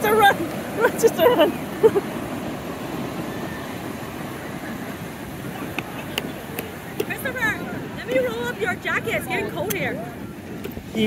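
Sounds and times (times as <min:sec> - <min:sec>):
ocean surf washing up beach: 0:00.0 - 0:11.0.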